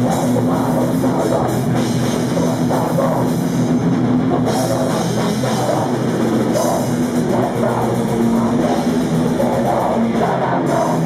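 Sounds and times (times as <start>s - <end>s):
distorted electric guitars: 0.0s - 11.0s
drum kit with cymbals: 0.0s - 11.0s.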